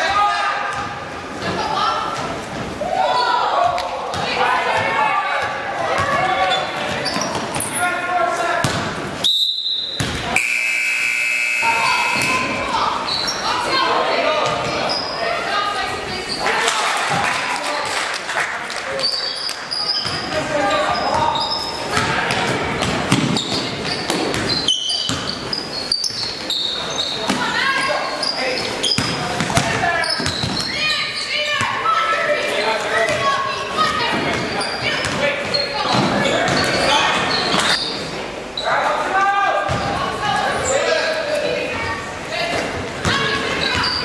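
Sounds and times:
sneaker squeaks: 6.0 - 7.8, 8.6 - 13.8, 14.4 - 15.4, 19.0 - 31.7, 32.4 - 38.8, 43.0 - 44.0
voices calling out: 9.7 - 17.7
basketball bouncing on wooden floor: 22.0 - 24.5, 25.1 - 25.3.

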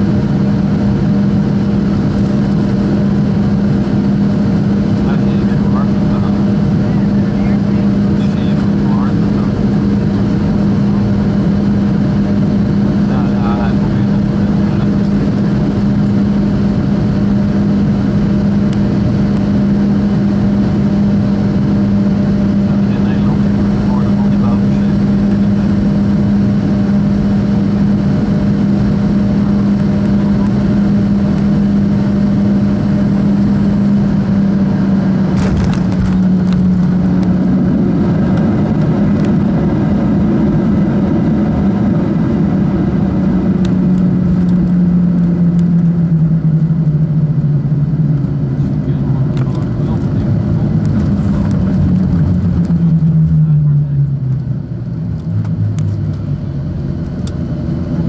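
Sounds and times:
jet engine drone: 0.0 - 58.0
runway rumble: 0.0 - 58.0.

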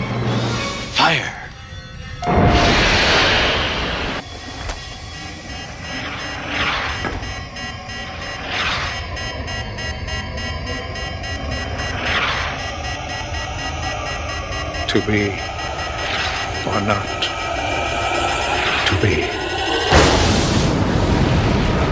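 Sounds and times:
sci-fi whoosh: 11.2 - 21.9.

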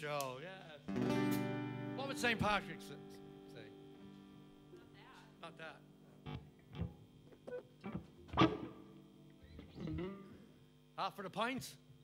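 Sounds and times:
plucked guitar strings: 0.9 - 3.3, 6.2 - 10.4.

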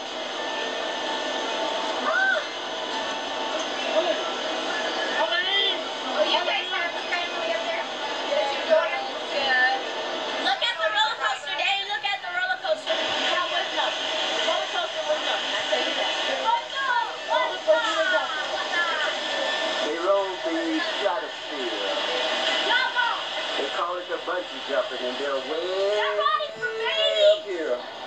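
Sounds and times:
voices through television speaker: 0.0 - 28.0.

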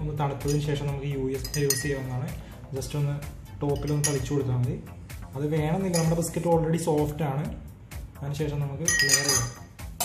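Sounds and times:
background music: 0.0 - 10.0
metal spoon clinking on glass: 1.4 - 2.1, 3.8 - 4.4, 5.9 - 6.3, 8.9 - 9.7.

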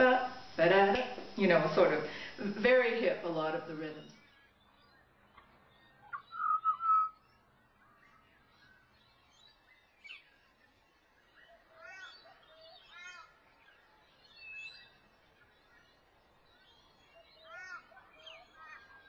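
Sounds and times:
bird singing flute-like notes: 4.0 - 10.7.

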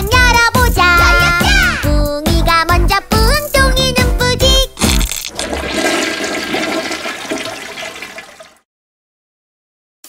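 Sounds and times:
children's song: 0.0 - 5.0
toilet flush sound effect: 4.8 - 8.6.

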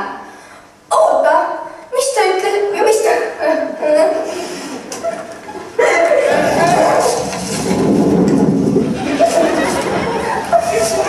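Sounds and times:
film voices in large hall: 0.0 - 11.0.

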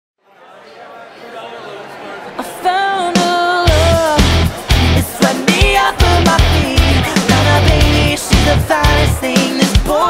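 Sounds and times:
murmur of chattering voices: 0.2 - 10.0.

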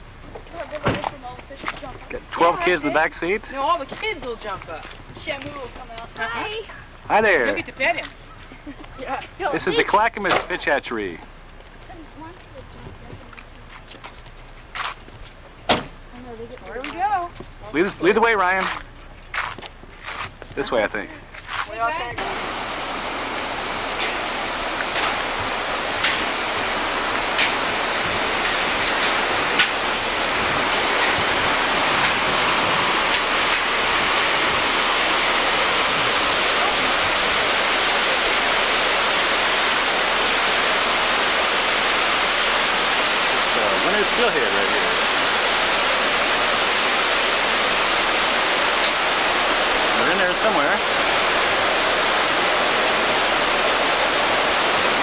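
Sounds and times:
water rushing: 0.0 - 12.8, 16.2 - 19.6, 20.6 - 55.0.

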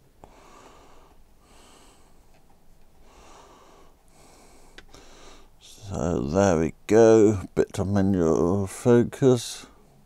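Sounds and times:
soft breathing through nose: 0.2 - 5.6.

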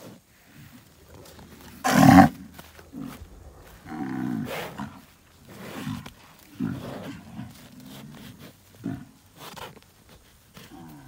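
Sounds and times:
hooves pawing dirt: 0.0 - 11.0
bull bellowing grunts: 0.6 - 9.6.

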